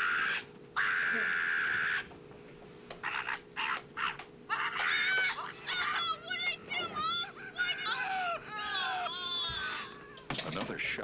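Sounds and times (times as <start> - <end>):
high-pitched wailing cries: 0.0 - 2.1, 3.0 - 10.3.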